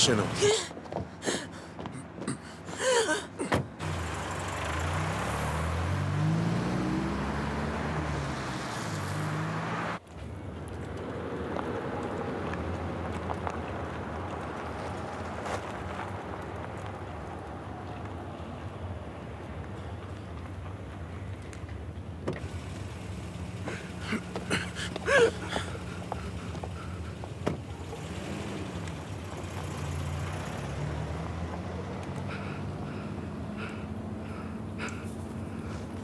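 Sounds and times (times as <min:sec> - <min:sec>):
road noise: 0:00.0 - 0:36.0
van engine accelerating: 0:03.6 - 0:17.6, 0:22.1 - 0:36.0.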